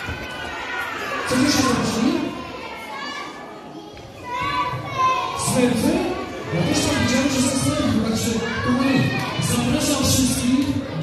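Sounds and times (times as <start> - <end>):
children chattering and calling out: 0.0 - 11.0
man's amplified voice: 1.2 - 2.5, 5.3 - 11.0.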